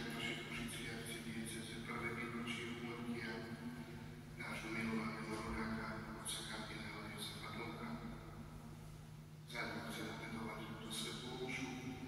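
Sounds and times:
man speaking at a distance: 0.0s - 8.6s, 9.4s - 12.0s
steady low hum: 0.0s - 12.0s.

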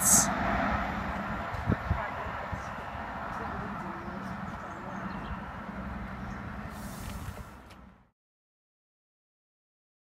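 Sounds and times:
distant diesel train rumble: 0.0s - 8.1s.

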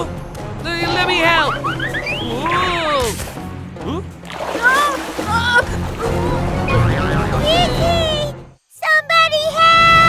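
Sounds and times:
cartoon background music: 0.0s - 10.0s
water splash: 4.2s - 7.0s.

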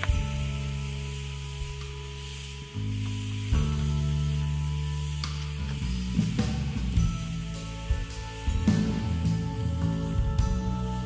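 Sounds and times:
background music with low notes: 0.0s - 11.0s
food sizzling in a skillet: 0.0s - 11.0s.

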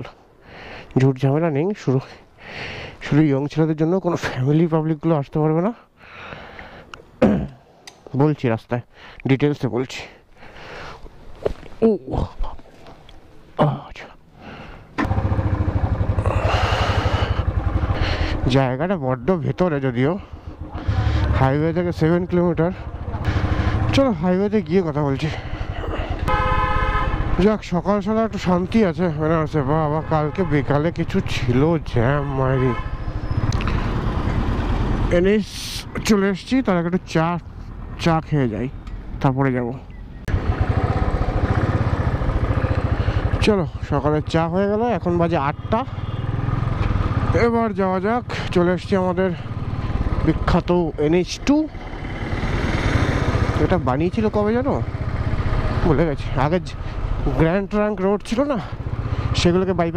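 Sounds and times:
motorcycle engine starting and running: 14.6s - 32.2s, 32.8s - 39.1s, 39.9s - 59.9s.

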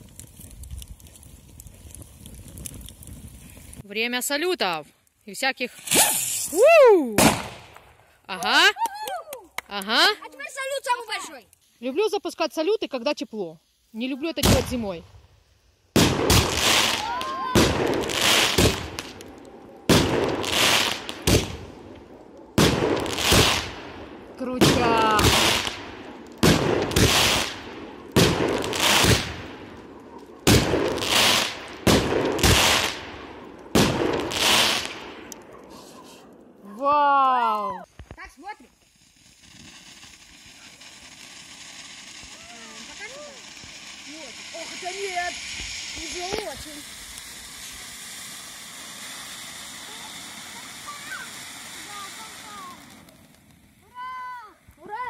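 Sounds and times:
firework fountain hissing: 5.5s - 36.3s, 37.0s - 55.0s
fireworks bangs echoing: 7.2s - 8.7s, 14.3s - 15.0s, 15.9s - 36.6s, 38.0s - 54.3s.

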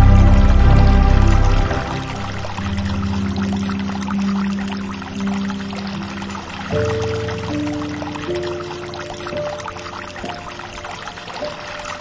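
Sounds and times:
calm music with low held notes: 0.0s - 12.0s
pouring trickling water: 0.0s - 12.0s.

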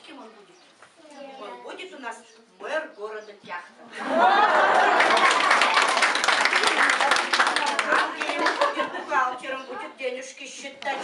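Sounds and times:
excited children's voices: 1.0s - 1.8s, 4.6s - 10.0s
children clapping: 4.6s - 9.0s.

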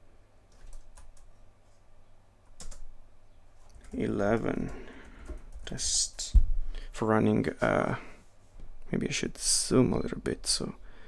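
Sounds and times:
laptop keyboard keystrokes: 0.5s - 1.3s, 2.5s - 2.9s.

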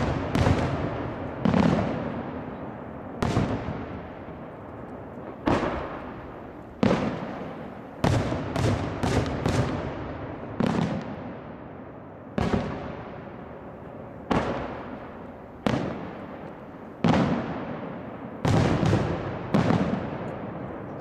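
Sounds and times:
firework shells booming: 0.0s - 11.5s, 12.3s - 20.9s.

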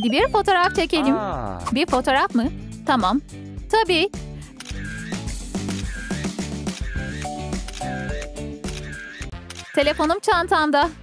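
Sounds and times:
upbeat background music: 0.0s - 11.0s
camera shutter click: 4.6s - 5.1s, 5.7s - 10.1s.

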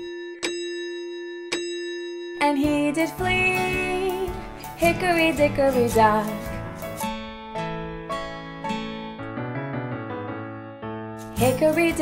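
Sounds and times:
clock chime: 0.0s - 2.7s.

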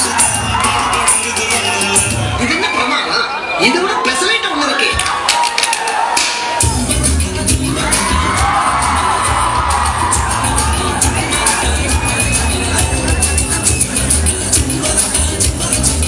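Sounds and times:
heavy bass beat: 0.0s - 2.4s, 6.0s - 16.0s
audience cheering and shouting: 0.0s - 16.0s
dance music over sound system: 0.0s - 16.0s.

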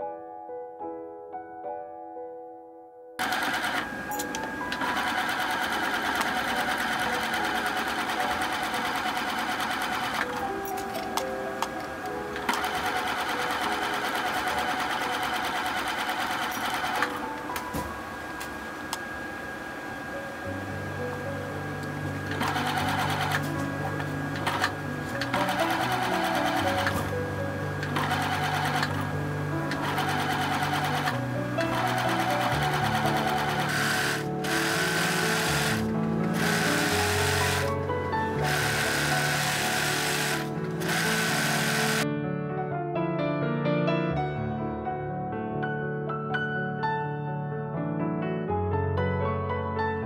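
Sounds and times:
background music: 0.0s - 50.0s
sewing machine stitching: 3.2s - 11.1s, 12.4s - 17.2s, 22.0s - 27.2s, 27.8s - 42.0s.

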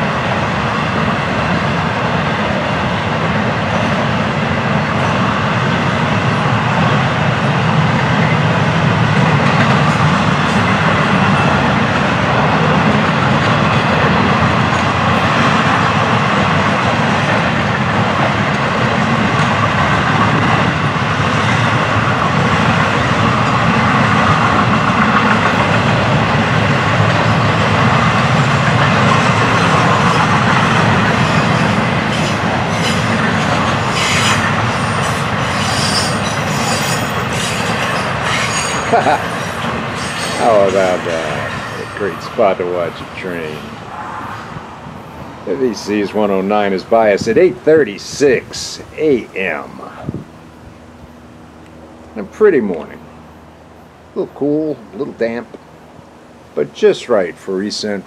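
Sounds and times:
steel wheels rumbling on rail: 0.0s - 58.0s
wheels clicking and squeaking: 31.1s - 42.0s.

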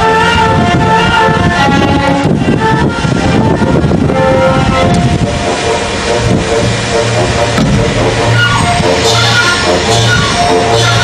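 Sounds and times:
loud orchestral music: 0.0s - 11.0s.

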